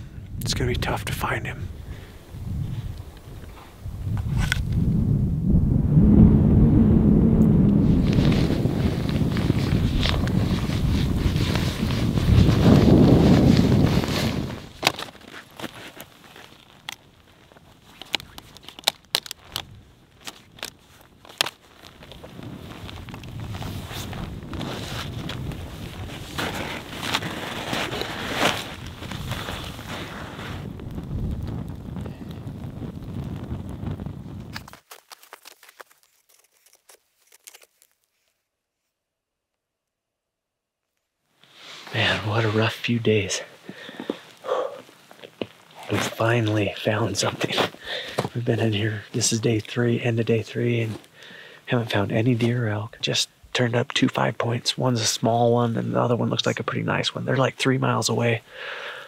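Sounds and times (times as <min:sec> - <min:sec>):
wind buffeting microphone: 0:00.0 - 0:14.8, 0:22.1 - 0:34.7
footsteps crunching in snow: 0:07.8 - 0:30.8, 0:34.4 - 0:38.9, 0:43.4 - 0:49.9.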